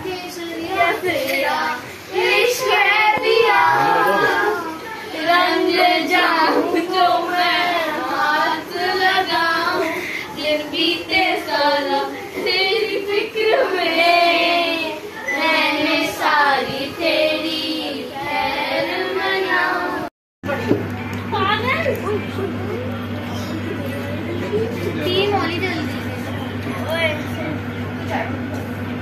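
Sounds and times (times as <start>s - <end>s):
girls singing unaccompanied: 0.0s - 20.1s.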